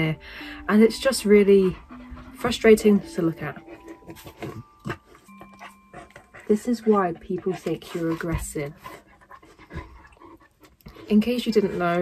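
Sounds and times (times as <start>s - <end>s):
dog breathing and sniffing: 0.5s - 12.0s.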